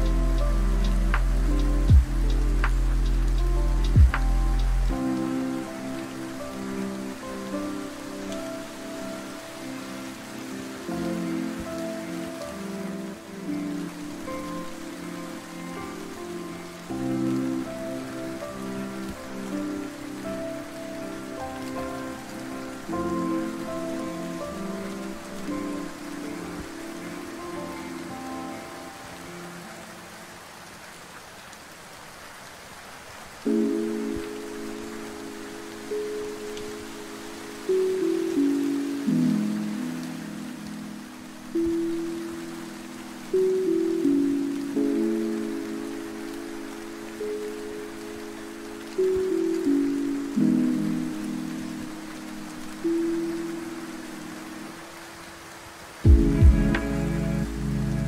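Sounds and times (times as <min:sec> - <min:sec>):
lofi music with mellow chords: 0:00.0 - 0:31.0, 0:33.4 - 0:54.8, 0:55.9 - 0:58.0
steady rainfall: 0:00.0 - 0:58.0
deep bass note: 0:56.1 - 0:58.0.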